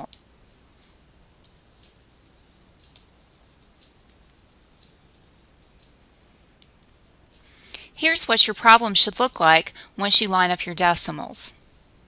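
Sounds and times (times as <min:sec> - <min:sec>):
stylus rubbing on tablet screen: 0:01.4 - 0:05.9.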